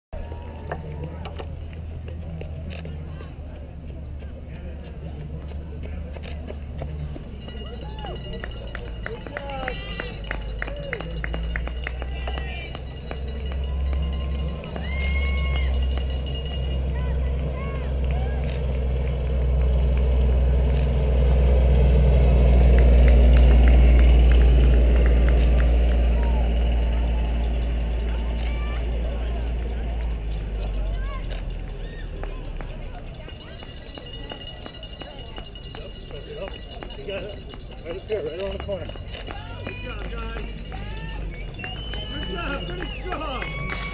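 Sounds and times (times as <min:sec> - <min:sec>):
distant voices: 0:00.2 - 0:43.9
utility vehicle engine passing: 0:00.6 - 0:43.9.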